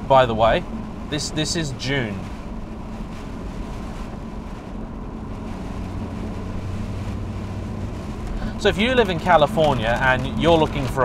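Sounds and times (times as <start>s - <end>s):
car engine droning: 0.0s - 11.0s
road noise: 0.0s - 11.0s.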